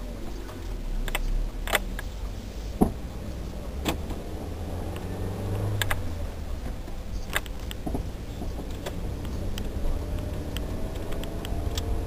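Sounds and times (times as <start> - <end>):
car engine and road rumble: 0.0 - 12.0
sharp clicks: 7.2 - 7.9, 8.7 - 12.0.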